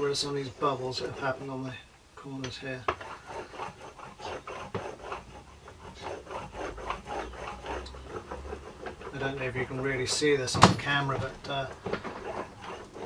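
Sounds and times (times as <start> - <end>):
roller rubbing over fibreglass cloth: 0.0 - 13.0.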